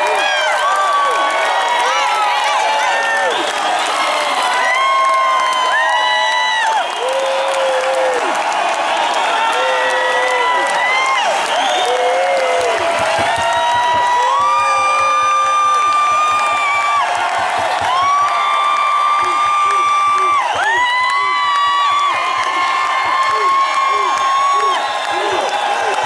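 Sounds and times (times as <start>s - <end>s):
audience cheering and applauding: 0.0s - 26.0s
fans whooping and screaming: 0.0s - 26.0s.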